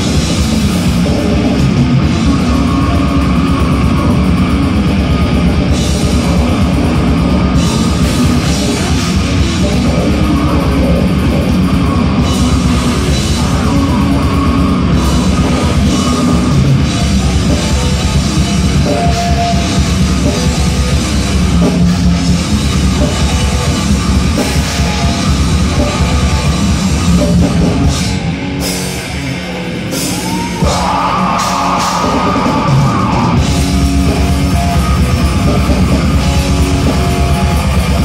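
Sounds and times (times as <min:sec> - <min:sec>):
distorted electric guitar: 0:00.0 - 0:38.0
drum kit: 0:00.0 - 0:38.0.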